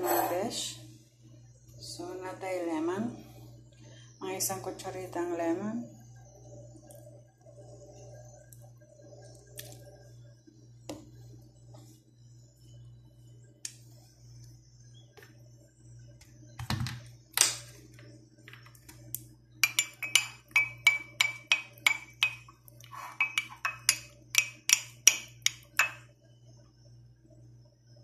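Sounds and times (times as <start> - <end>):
brush clinking against ceramic mug: 19.6 - 26.1.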